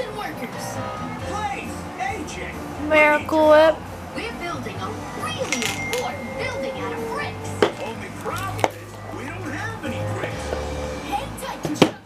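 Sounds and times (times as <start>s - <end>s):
cartoon music: 5.2s - 8.7s
cartoon voices: 5.3s - 8.2s.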